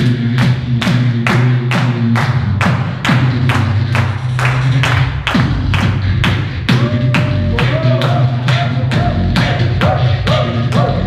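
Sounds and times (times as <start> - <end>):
beatboxing through a microphone: 0.0 - 11.0
low bass hum: 0.0 - 11.0.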